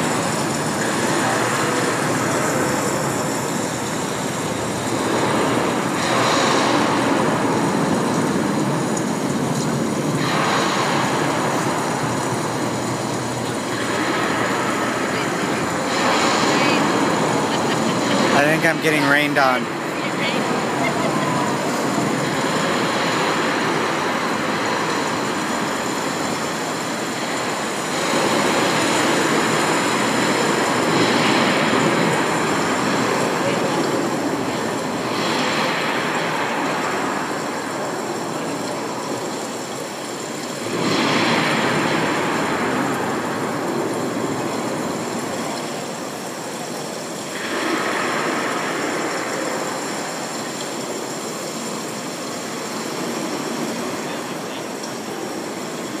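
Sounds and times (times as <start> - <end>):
water falling on pool and paving: 0.0 - 56.0
crowd chatter: 12.2 - 22.9.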